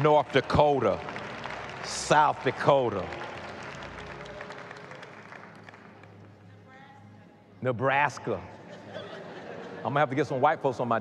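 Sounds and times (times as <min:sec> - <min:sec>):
congregation clapping: 0:00.0 - 0:06.4.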